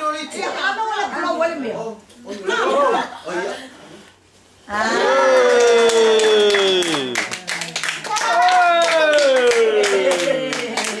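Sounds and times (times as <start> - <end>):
person cheering: 4.7 - 7.2, 8.1 - 10.9
group of people clapping: 5.1 - 11.0.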